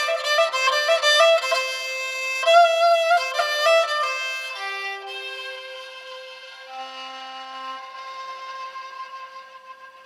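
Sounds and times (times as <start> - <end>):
bowed fiddle sustained note: 0.0 - 10.0.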